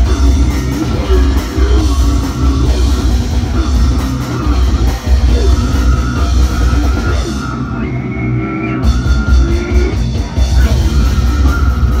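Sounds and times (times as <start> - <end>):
death metal band playing: 0.0 - 12.0.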